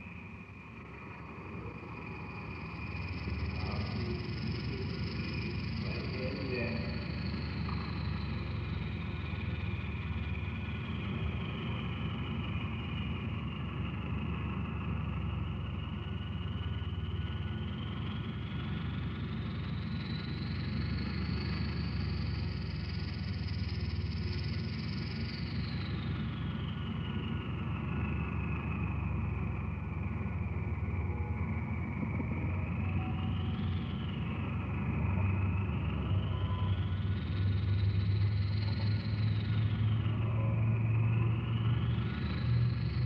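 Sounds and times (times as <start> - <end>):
low rumbling drone: 0.0 - 43.0
gliding thin whistle: 36.0 - 39.3.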